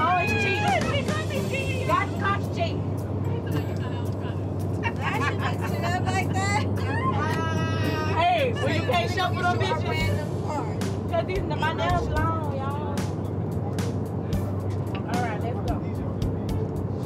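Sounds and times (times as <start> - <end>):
women talking: 0.0 - 13.1
jet cabin drone: 0.0 - 17.0
women laughing: 3.3 - 7.8, 8.4 - 9.4.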